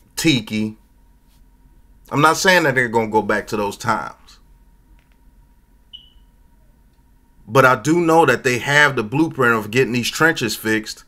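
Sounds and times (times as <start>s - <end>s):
low steady hum: 0.0s - 11.0s
faint high-pitched beep: 5.9s - 6.4s.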